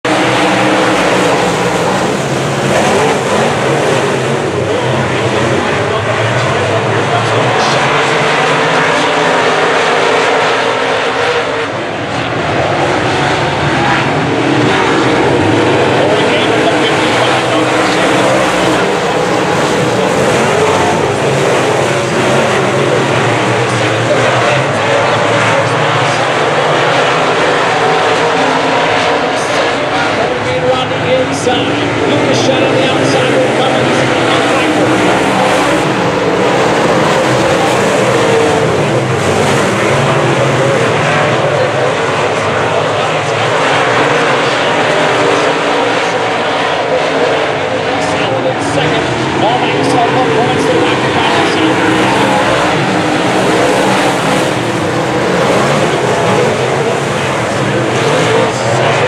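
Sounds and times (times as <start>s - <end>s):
race car engines roaring: 0.0s - 59.0s.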